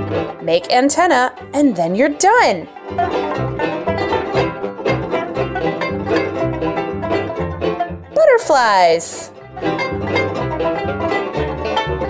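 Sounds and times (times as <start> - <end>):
plucked notes background music: 0.0 - 12.0.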